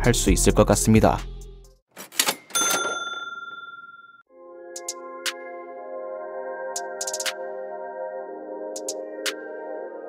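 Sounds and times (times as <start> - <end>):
background music: 0.0 - 1.8, 4.3 - 10.0
bright bell-like ding: 2.6 - 4.0.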